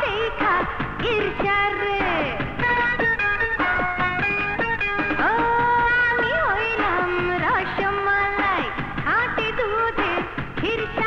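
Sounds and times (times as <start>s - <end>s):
woman singing: 0.0s - 2.6s, 5.2s - 11.0s
instrumental backing music: 0.0s - 11.0s.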